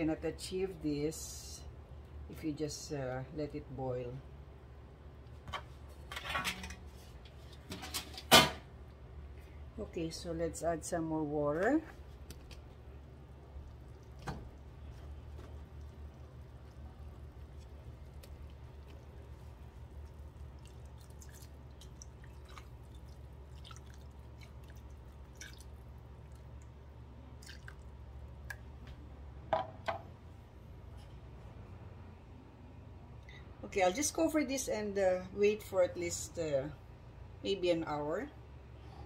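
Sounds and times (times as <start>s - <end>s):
steady low hum: 0.0s - 39.0s
drips and pops of liquid: 13.5s - 26.8s, 27.4s - 29.0s
water pouring into a pan: 13.8s - 26.6s.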